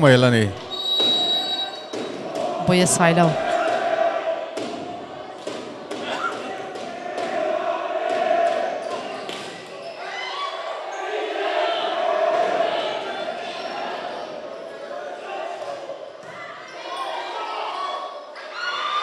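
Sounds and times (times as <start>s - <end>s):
spectators' voices and shouts: 0.0s - 19.0s
volleyball hits: 4.5s - 7.5s.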